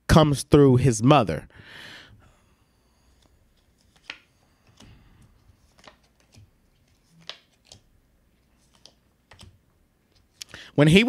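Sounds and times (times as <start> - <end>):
cards clicking and tapping: 3.2 - 7.9, 8.6 - 10.5.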